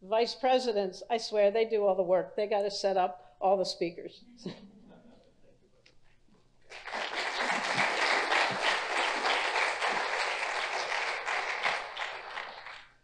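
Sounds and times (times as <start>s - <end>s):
audience clapping: 6.7s - 13.0s.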